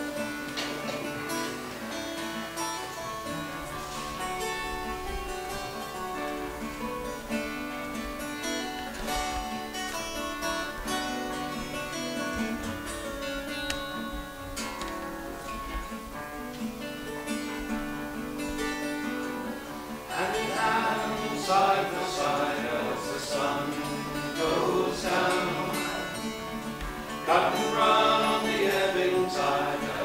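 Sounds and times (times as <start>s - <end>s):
acoustic guitar playing: 0.0s - 30.0s
voices singing: 19.0s - 30.0s.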